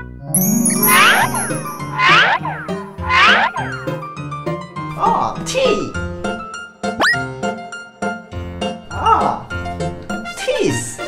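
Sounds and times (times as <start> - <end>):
cartoon pitch glide effects: 0.4 - 2.4
children's background music: 0.4 - 3.4.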